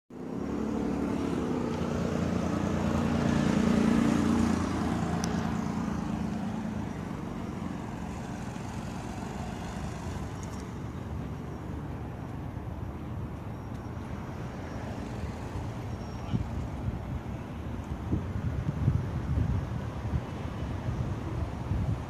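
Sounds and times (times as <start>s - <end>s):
traffic hum: 0.1s - 22.0s.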